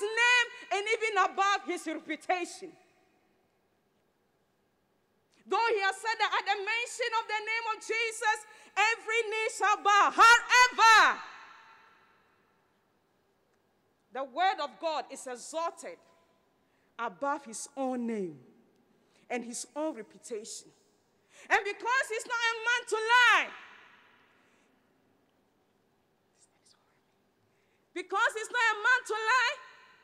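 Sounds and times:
woman speaking with echo: 0.0 - 3.2, 5.4 - 12.3, 14.1 - 24.4, 27.9 - 30.0.

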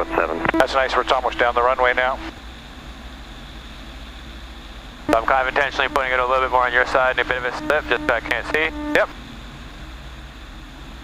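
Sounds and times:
airplane engine and propeller droning: 0.0 - 11.0.

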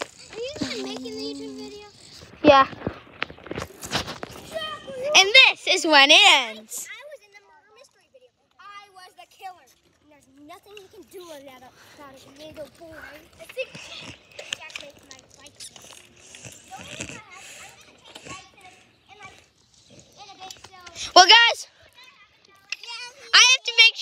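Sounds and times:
children talking and calling out: 0.0 - 24.0.

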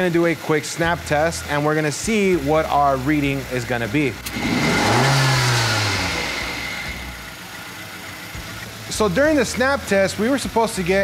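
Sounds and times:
car engine revving: 0.8 - 10.0.

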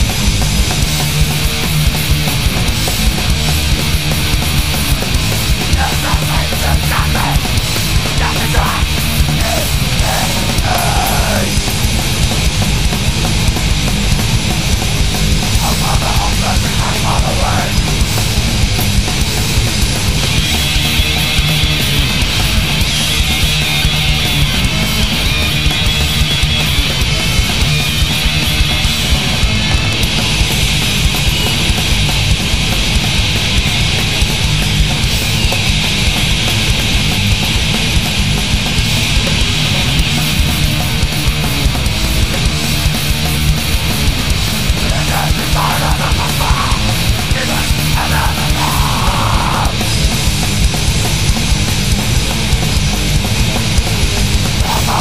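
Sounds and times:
distorted guitars and bass: 0.0 - 55.0
fast pounding drums: 0.0 - 55.0.

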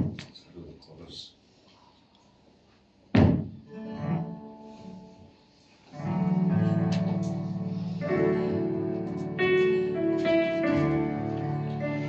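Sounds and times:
loud thump: 3.1 - 3.6
guitar chord: 6.0 - 12.0.

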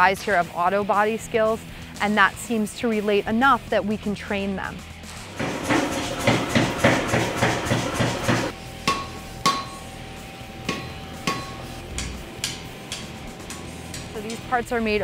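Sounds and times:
hammer striking iron on anvil: 5.4 - 14.4.

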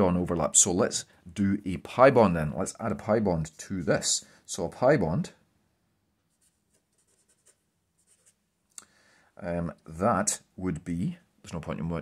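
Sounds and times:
marker scratching on paper: 6.3 - 8.4.

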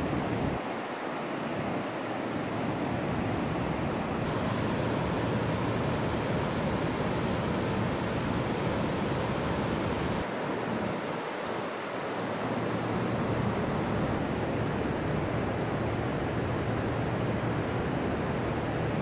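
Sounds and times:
white water rushing: 0.0 - 19.0.

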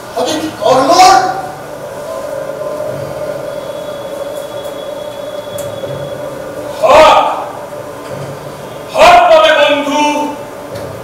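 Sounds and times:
steady droning tone: 0.0 - 9.0
thin high whistling tone: 2.1 - 6.7.

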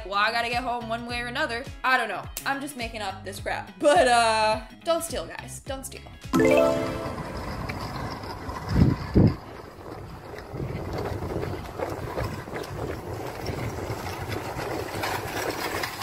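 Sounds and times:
wind buffeting microphone: 7.6 - 16.0.

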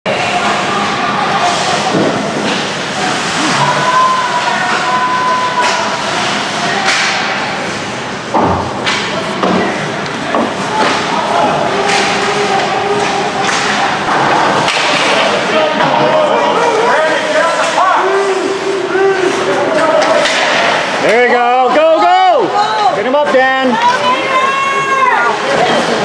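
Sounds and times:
hockey sticks and skates on ice: 0.1 - 18.1, 19.0 - 21.2
voices of players and spectators: 0.1 - 26.0
puck hitting the boards: 5.6 - 7.4, 8.3 - 16.0, 20.0 - 20.9.

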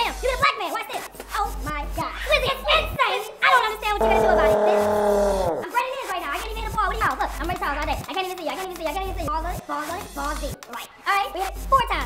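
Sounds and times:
man shouting: 4.0 - 5.6.

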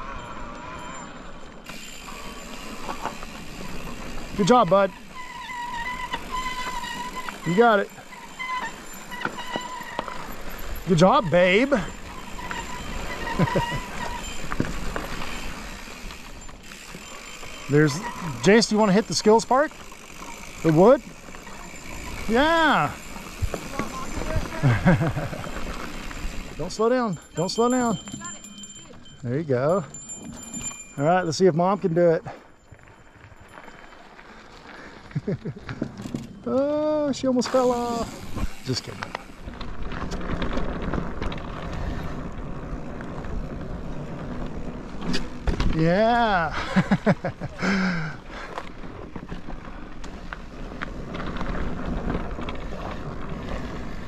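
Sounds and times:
tyre and wind noise: 0.0 - 18.8, 19.8 - 54.0
bike knocking and rattling: 0.0 - 54.0.

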